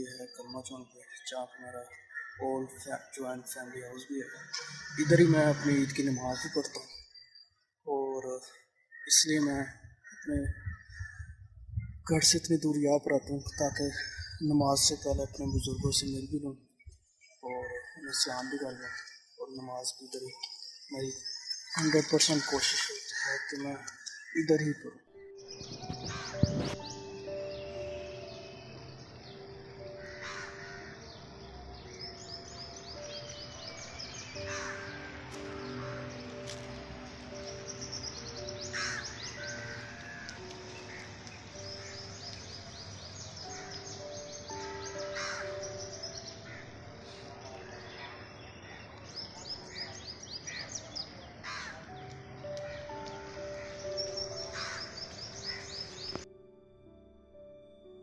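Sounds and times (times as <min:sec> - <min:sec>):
bird calls: 0:00.0 - 0:12.0, 0:16.4 - 0:56.3
soft background music: 0:00.0 - 0:58.0
crow cawing: 0:01.9 - 0:02.5, 0:04.1 - 0:06.7, 0:08.8 - 0:11.3, 0:17.6 - 0:19.4, 0:21.3 - 0:24.4, 0:26.0 - 0:26.6, 0:29.7 - 0:31.2, 0:31.8 - 0:36.5, 0:37.3 - 0:48.8, 0:49.6 - 0:56.2.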